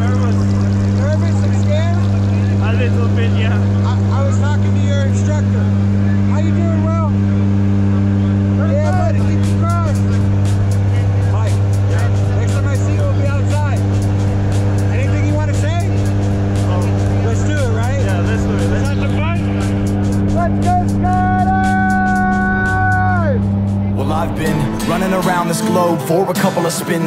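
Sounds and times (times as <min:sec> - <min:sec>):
airplane engines droning: 0:00.0 - 0:27.0
muffled voices: 0:00.0 - 0:27.0.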